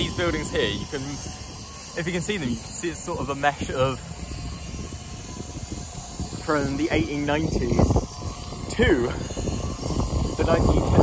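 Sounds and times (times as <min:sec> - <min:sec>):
low rumble of town traffic: 0:00.0 - 0:11.0
wind buffeting microphone: 0:00.0 - 0:11.0.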